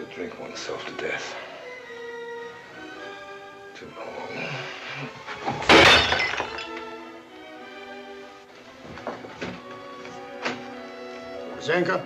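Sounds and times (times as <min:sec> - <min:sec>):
orchestral film score: 0:00.0 - 0:05.6, 0:06.6 - 0:12.0
drinking glass smashing: 0:05.4 - 0:07.0.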